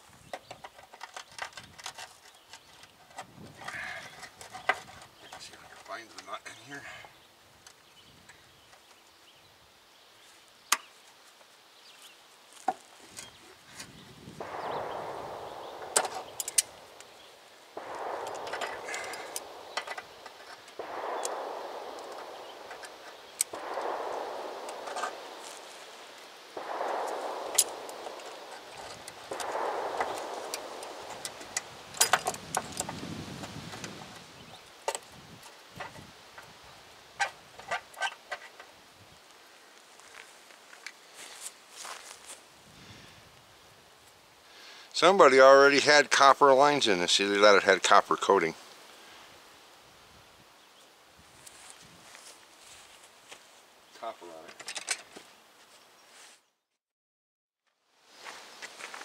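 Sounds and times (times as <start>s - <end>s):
sharp metal clicks: 14.4s - 17.2s.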